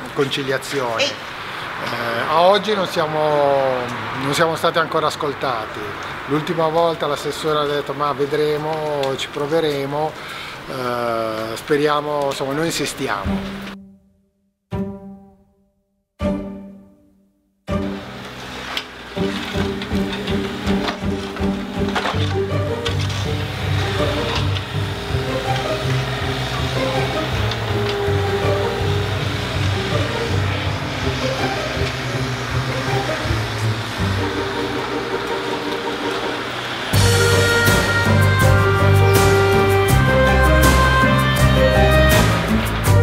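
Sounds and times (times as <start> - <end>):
music with held low notes: 17.7 - 43.0.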